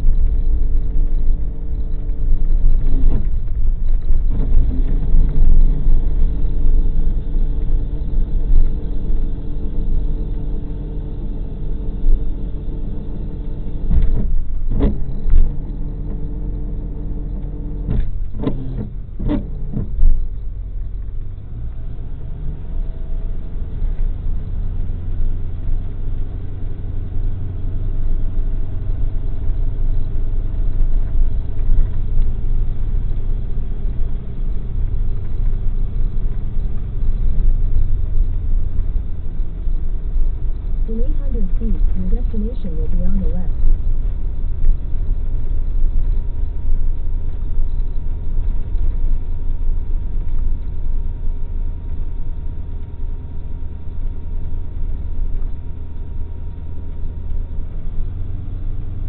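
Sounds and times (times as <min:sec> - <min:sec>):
vehicle engine and road rumble: 0:00.0 - 0:59.0.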